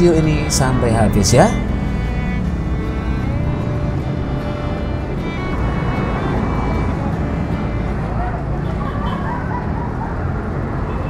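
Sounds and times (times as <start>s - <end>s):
background music: 0.0s - 9.5s.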